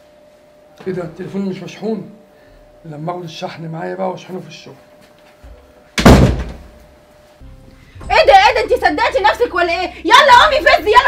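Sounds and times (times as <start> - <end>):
front door slamming: 6.0 - 6.8.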